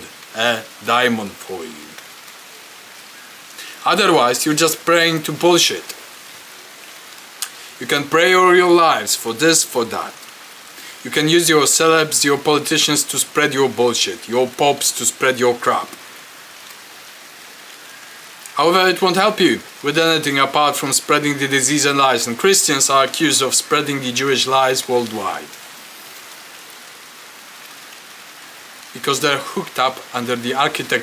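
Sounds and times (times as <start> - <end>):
man's voice: 0.0 - 2.0, 3.6 - 6.0, 7.8 - 10.2, 11.0 - 16.0, 18.6 - 25.6, 28.9 - 31.0
rain hissing: 0.0 - 31.0.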